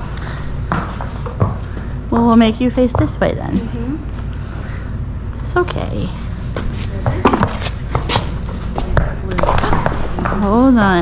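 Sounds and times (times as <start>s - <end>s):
hooves and boots on concrete: 0.0s - 4.8s, 5.4s - 11.0s
low steady rumble: 0.0s - 11.0s.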